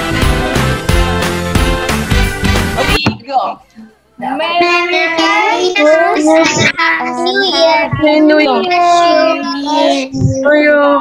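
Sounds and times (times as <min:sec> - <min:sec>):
child singing: 0:04.4 - 0:11.0.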